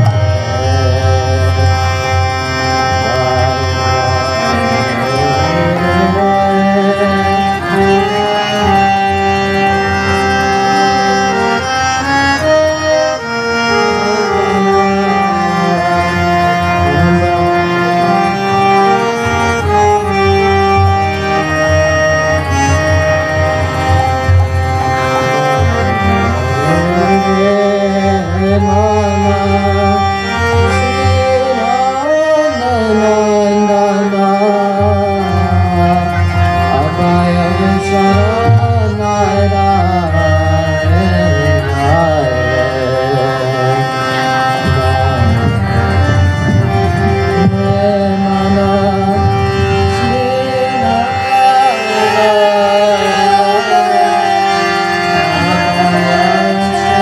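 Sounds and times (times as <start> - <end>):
man singing: 0.0 - 23.3, 25.2 - 57.0
harmonium melody: 0.0 - 57.0.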